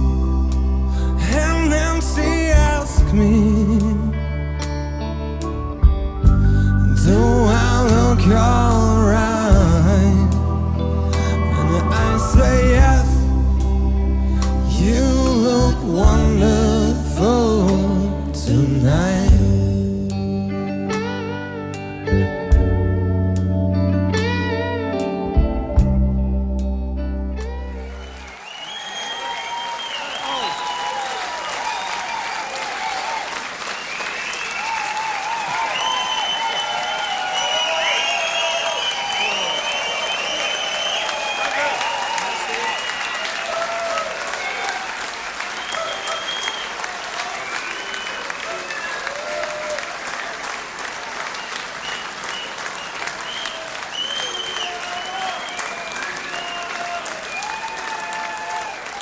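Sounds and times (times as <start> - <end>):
crowd shouting and cheering: 7.0 - 17.0, 27.4 - 59.0
audience applauding: 10.2 - 13.2, 27.6 - 59.0.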